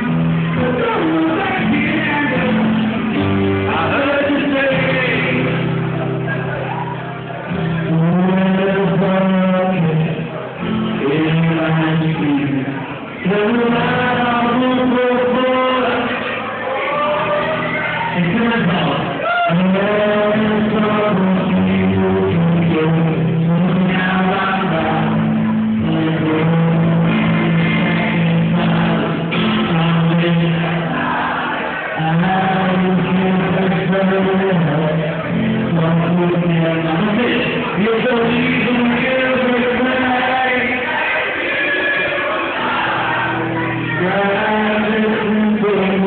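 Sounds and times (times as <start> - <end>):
person singing: 0.0 - 46.0
rock band playing live: 0.0 - 46.0.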